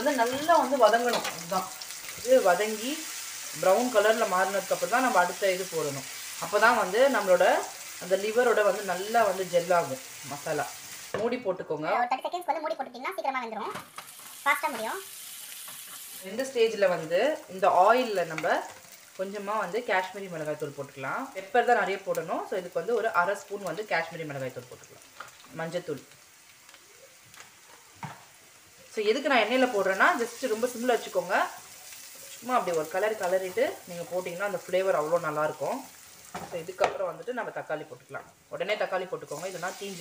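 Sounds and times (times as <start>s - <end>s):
onions sizzling in oil: 0.0s - 11.9s, 12.7s - 40.0s.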